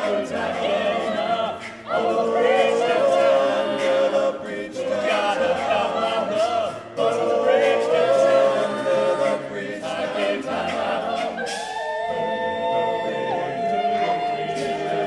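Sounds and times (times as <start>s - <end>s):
male a cappella group singing: 0.0s - 15.0s.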